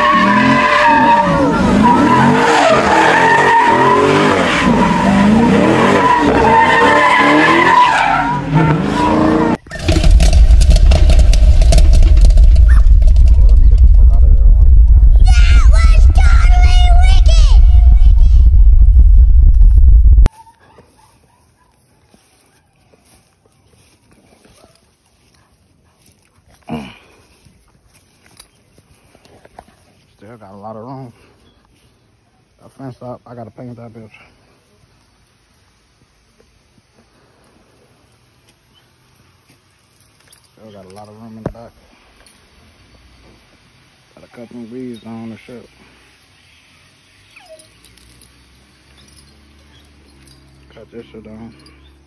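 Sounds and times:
puppy barking: 20.3s - 22.7s
faint chain clinks: 39.1s - 41.4s, 47.4s - 52.0s.

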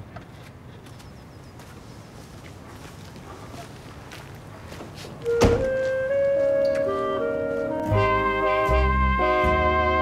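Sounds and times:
theme music with brass: 7.0s - 10.0s.

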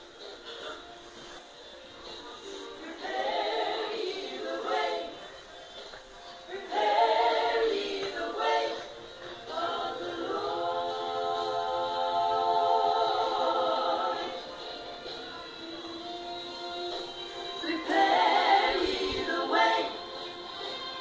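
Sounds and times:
vocal ensemble singing: 2.4s - 5.6s, 6.4s - 21.0s.

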